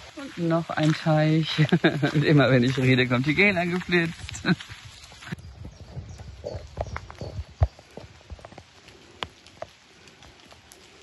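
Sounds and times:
footsteps on wet gravel: 0.0s - 11.0s.

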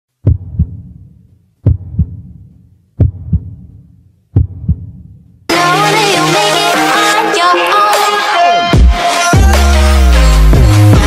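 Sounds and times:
heartbeat double thumps: 0.2s - 5.2s
electronic dance music: 5.5s - 11.0s.

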